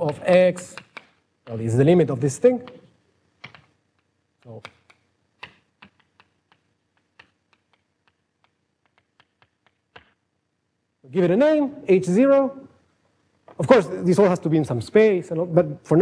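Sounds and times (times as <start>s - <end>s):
chalk tapping on blackboard: 0.0s - 1.8s, 2.5s - 10.2s.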